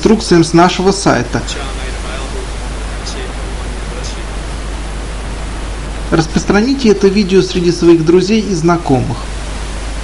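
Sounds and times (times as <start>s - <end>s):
background hiss: 0.0s - 10.0s
low hum: 0.0s - 10.0s.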